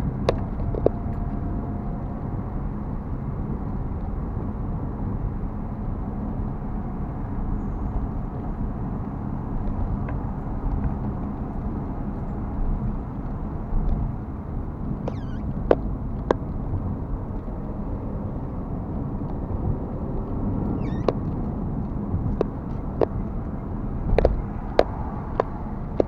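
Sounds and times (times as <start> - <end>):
car road noise at highway speed: 0.0 - 26.0.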